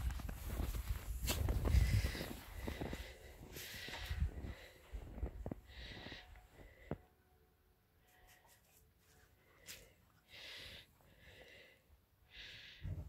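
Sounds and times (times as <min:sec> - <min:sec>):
crunching steps in snow: 0:00.0 - 0:06.2.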